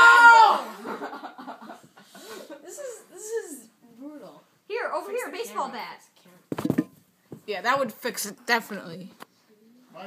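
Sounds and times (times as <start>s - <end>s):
child shouting: 0.0s - 0.6s.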